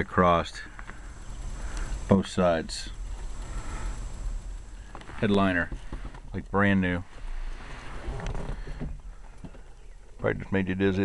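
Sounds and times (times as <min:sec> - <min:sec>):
low rumble: 0:00.4 - 0:08.3.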